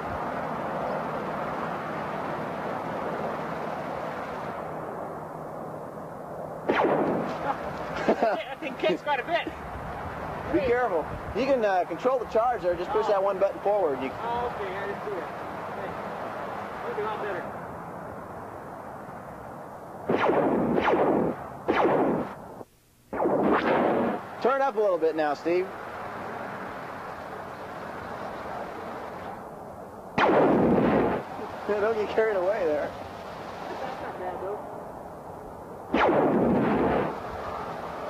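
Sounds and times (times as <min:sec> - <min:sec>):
distant highway traffic: 0:00.0 - 0:38.0
low background noise: 0:00.0 - 0:38.0
toy laser gun blast: 0:06.7 - 0:07.5, 0:20.1 - 0:22.4, 0:23.1 - 0:24.2, 0:30.2 - 0:31.2, 0:35.9 - 0:37.2.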